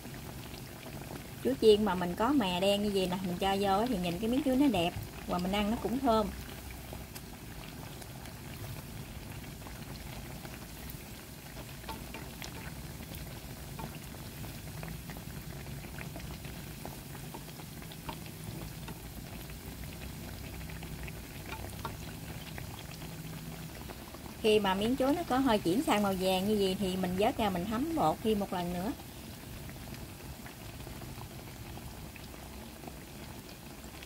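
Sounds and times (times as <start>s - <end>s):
deep-frying sizzle with pops: 0.0s - 34.0s.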